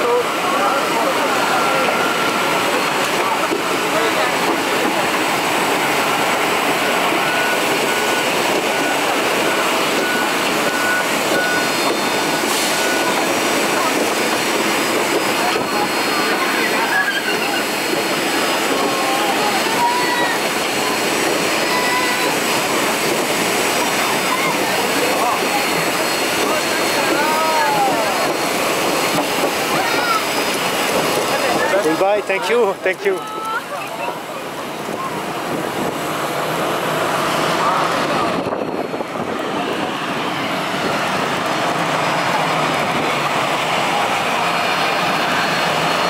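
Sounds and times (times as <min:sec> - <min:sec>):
jet cabin engine noise: 0:00.0 - 0:46.0
passengers talking indistinctly: 0:00.0 - 0:46.0.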